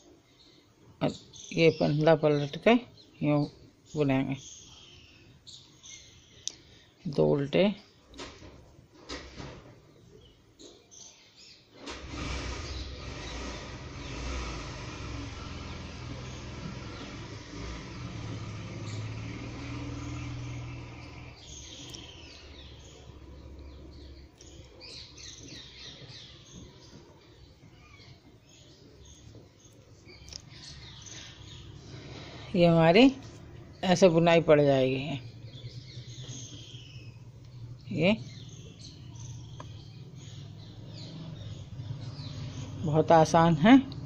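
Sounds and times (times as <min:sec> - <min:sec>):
birds chirping: 0:00.0 - 0:44.0
faint clicks: 0:06.4 - 0:06.6
low motor-like rumble with hiss: 0:11.9 - 0:44.0.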